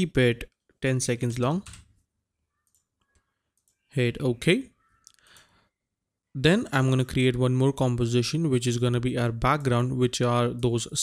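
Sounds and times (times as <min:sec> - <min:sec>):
faint computer clicks: 0:02.6 - 0:03.8
man's voice: 0:06.4 - 0:11.0.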